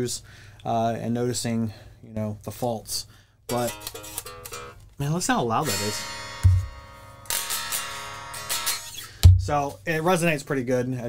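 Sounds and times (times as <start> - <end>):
electric guitar chords strummed: 3.5 - 4.8, 5.6 - 9.6.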